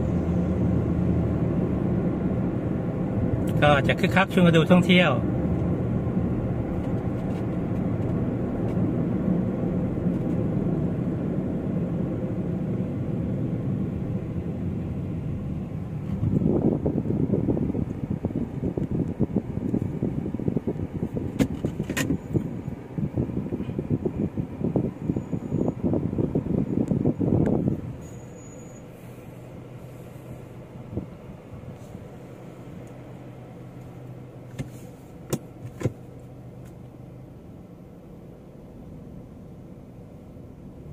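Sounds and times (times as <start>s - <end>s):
road and engine noise inside car: 0.0s - 40.9s.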